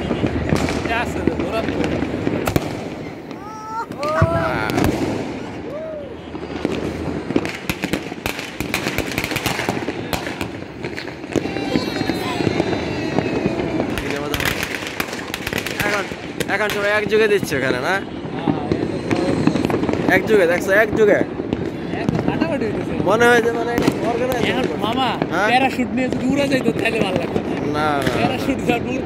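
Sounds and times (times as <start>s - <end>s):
fireworks and firecrackers banging: 0.0s - 29.0s.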